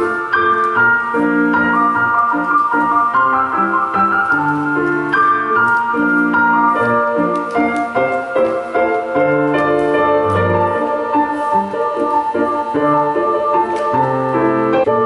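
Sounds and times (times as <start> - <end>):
piano music: 0.0 - 15.0.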